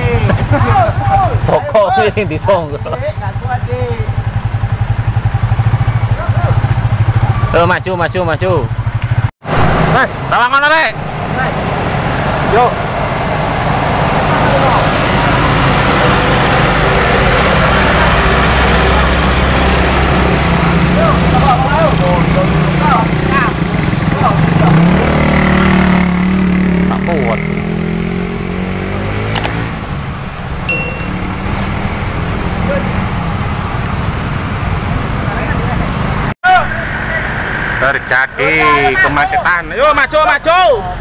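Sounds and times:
people shouting: 0.0s - 2.2s, 5.7s - 7.5s
vehicle engines labouring: 0.0s - 41.0s.

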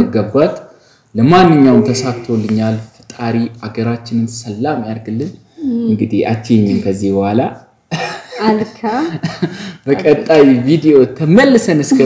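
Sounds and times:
conversational speech: 0.0s - 12.0s.

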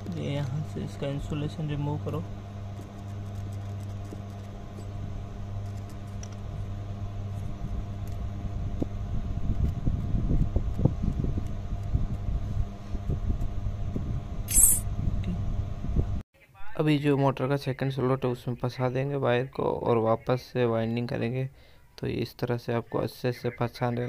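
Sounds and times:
steady low hum: 0.0s - 16.8s
blade scraping wire: 14.5s - 14.8s.

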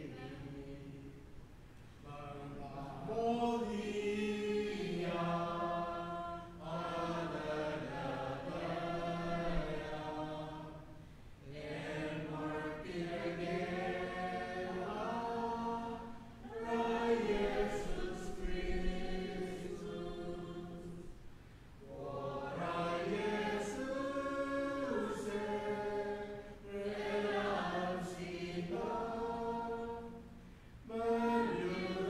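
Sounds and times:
congregation singing a hymn: 0.0s - 32.0s.

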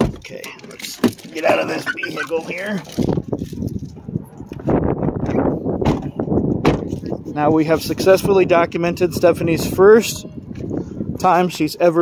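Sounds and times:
sharp thump: 5.8s - 6.9s.

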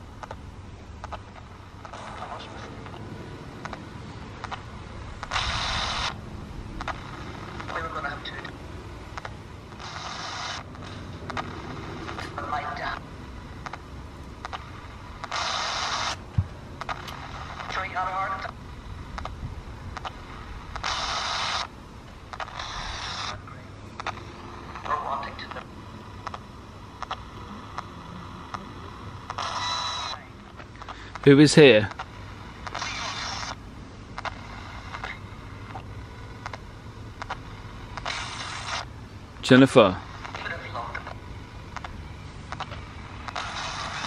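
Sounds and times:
radio static bursts: 0.0s - 44.0s
broadcast voice fragments: 1.9s - 3.0s, 6.9s - 8.6s, 9.8s - 13.0s, 17.6s - 18.6s, 22.5s - 26.5s, 27.2s - 32.0s, 39.4s - 41.2s.

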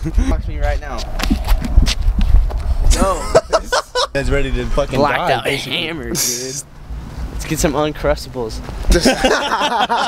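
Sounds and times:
low rumble: 0.4s - 3.6s
footsteps on pavement: 0.6s - 2.9s.

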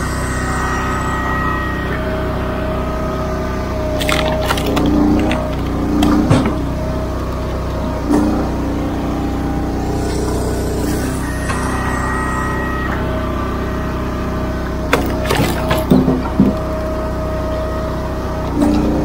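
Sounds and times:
log splitter engine running: 1.8s - 19.0s.

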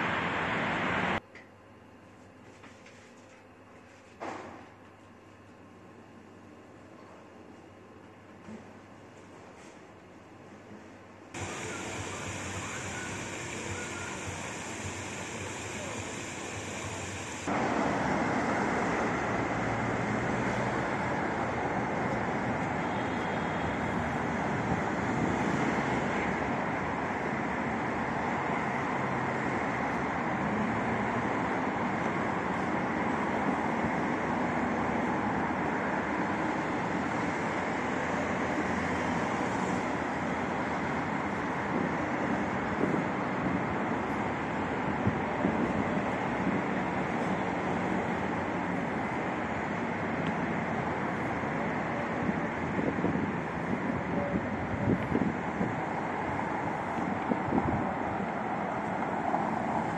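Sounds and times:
road traffic: 0.0s - 1.2s, 11.4s - 59.9s
wind on microphone: 52.3s - 58.3s.

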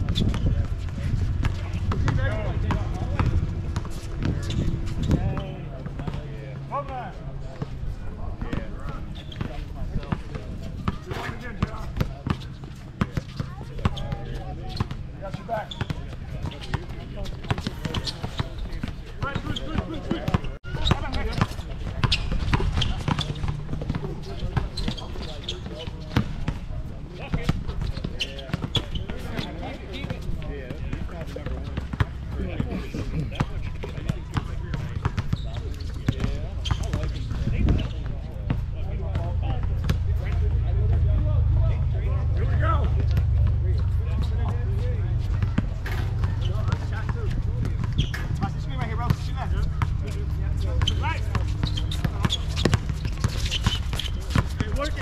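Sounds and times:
distant players' voices: 0.0s - 55.0s
basketball bouncing on hard court: 45.2s - 55.0s.

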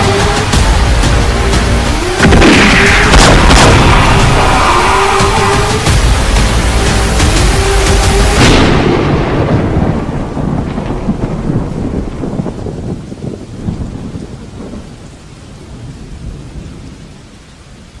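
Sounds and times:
loud thunderclap: 0.0s - 15.0s
rain: 0.0s - 18.0s
rolling thunder rumble: 0.0s - 18.0s.

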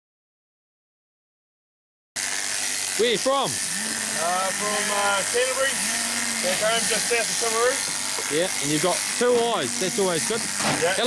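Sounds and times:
shearing handpieces running: 2.2s - 11.0s.

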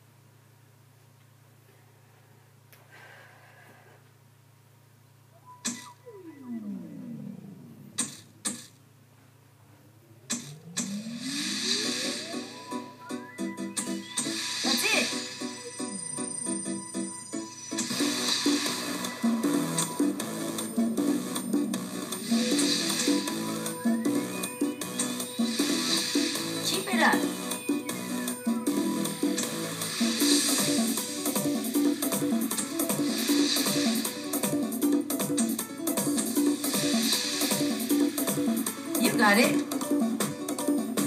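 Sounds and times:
falling pitch sweeps: 5.4s - 8.0s, 9.9s - 30.9s
rising sweep: 5.5s - 8.0s, 9.8s - 34.9s
dance beat: 18.0s - 39.6s.

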